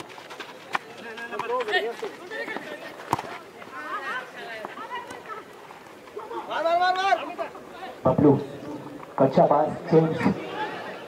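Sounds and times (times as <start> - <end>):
ball being kicked: 3.0 - 3.4.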